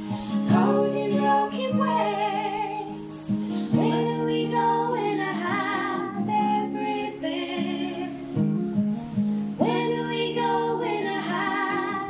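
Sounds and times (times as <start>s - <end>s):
acoustic folk band playing: 0.0s - 12.0s
strummed acoustic guitar: 0.0s - 12.0s.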